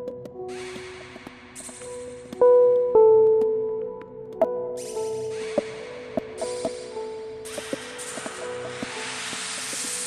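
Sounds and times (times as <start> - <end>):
hiss: 7.5 - 10.0.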